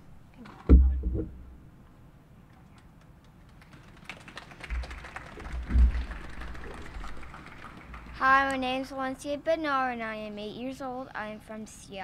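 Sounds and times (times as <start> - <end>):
low thumps: 0.7 - 1.6, 4.7 - 6.5.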